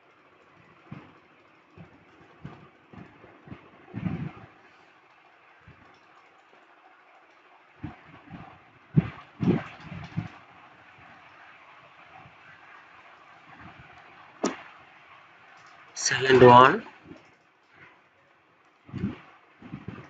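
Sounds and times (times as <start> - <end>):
faint steady hiss: 0.0 - 20.0.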